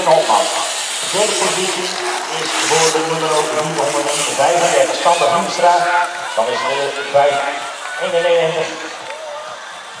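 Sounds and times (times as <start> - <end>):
man announcing over loudspeaker: 0.0 - 9.6
outdoor background noise: 0.0 - 10.0.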